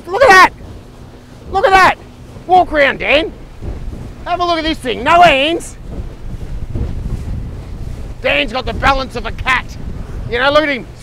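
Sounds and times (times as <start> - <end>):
boat running under way: 0.0 - 11.0
wind buffeting microphone: 0.0 - 11.0.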